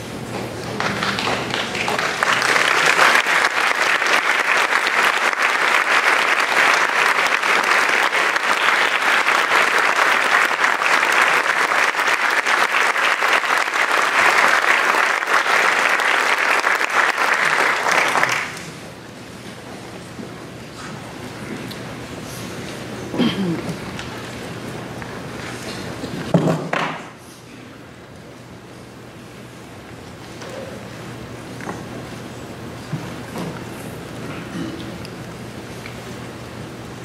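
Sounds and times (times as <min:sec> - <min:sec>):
audience applauding: 0:00.6 - 0:18.9.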